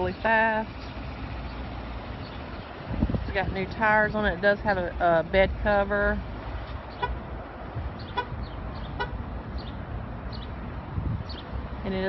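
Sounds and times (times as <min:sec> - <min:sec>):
distant traffic: 0:00.0 - 0:12.0
wind: 0:00.0 - 0:12.0.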